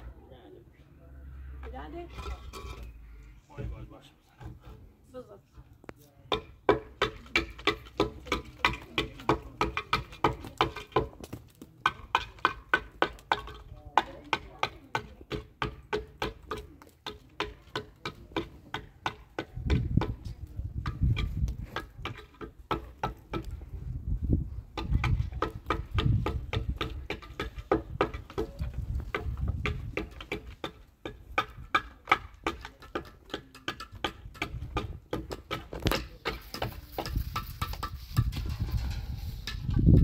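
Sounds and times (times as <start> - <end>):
hammer knocking on concrete block: 6.3 - 11.2, 11.8 - 23.7, 24.7 - 38.4.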